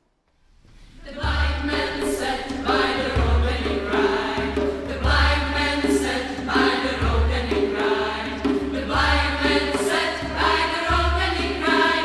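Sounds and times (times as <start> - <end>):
choir singing in harmony: 1.0 - 12.0.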